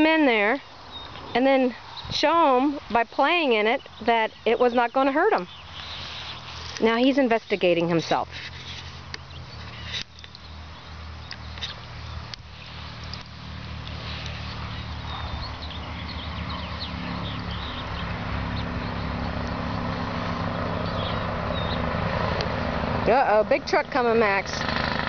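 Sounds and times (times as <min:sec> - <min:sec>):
truck engine drone: 0:12.1 - 0:25.0.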